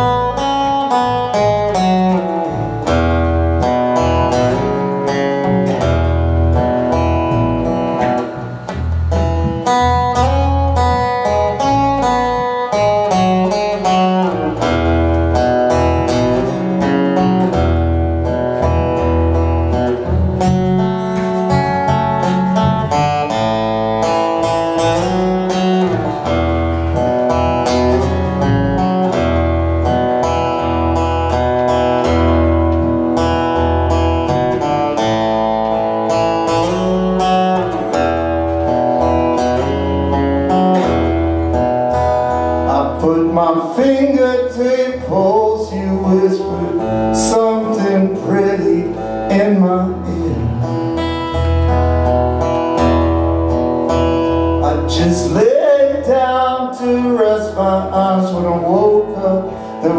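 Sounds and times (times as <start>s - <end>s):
acoustic guitar strummed and picked: 0.0s - 59.9s
double bass low notes: 0.0s - 59.9s.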